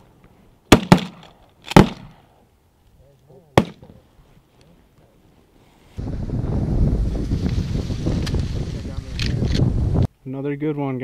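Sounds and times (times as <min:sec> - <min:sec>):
shotgun shots: 0:00.7 - 0:02.2, 0:03.6 - 0:03.9.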